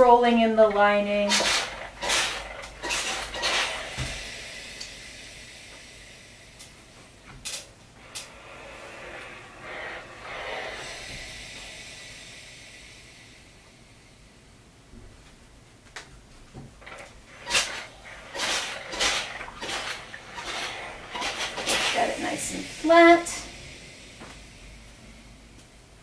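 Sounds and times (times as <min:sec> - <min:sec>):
faint steam hiss: 0:00.0 - 0:15.8, 0:16.7 - 0:26.0
iron knocking: 0:16.6 - 0:23.5.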